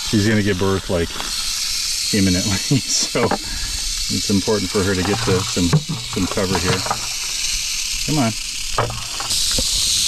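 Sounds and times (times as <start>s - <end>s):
rattlesnake rattling: 0.0s - 10.0s.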